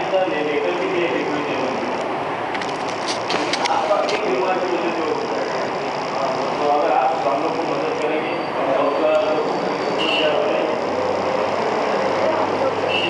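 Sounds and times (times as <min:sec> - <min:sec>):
steady background noise: 0:00.0 - 0:13.0.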